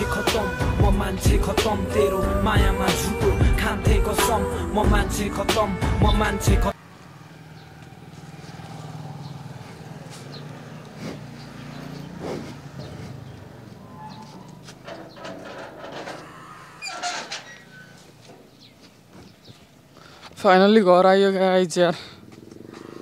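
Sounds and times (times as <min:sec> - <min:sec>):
metal gate knocks and scrapes: 0:13.8 - 0:18.0.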